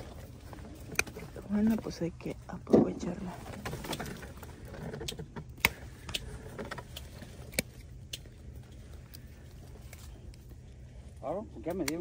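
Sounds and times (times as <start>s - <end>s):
shears snipping: 0.0s - 2.4s, 5.0s - 10.7s, 11.6s - 12.0s.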